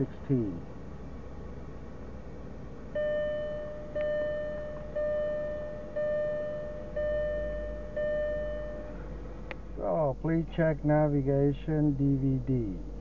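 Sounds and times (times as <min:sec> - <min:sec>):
car warning chime: 0:03.0 - 0:09.3.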